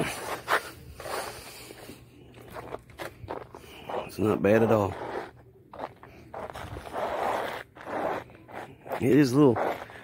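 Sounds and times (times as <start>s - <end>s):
footsteps crunching on ice: 0.0s - 10.0s.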